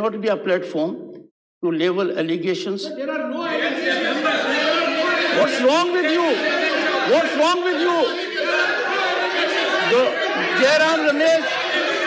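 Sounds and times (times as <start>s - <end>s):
men talking and calling out: 2.8s - 12.0s.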